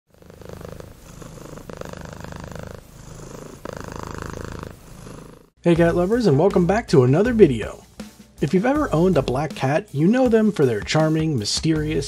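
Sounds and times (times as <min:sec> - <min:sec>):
cat purring: 0:00.1 - 0:05.6.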